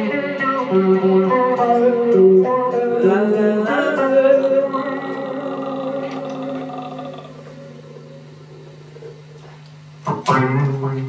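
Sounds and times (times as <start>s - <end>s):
electric guitar chord ringing: 0.0s - 9.4s.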